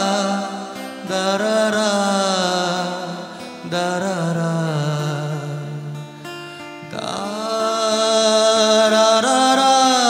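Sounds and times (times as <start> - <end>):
acoustic guitar: 0.0 - 10.0
man singing: 0.0 - 10.0.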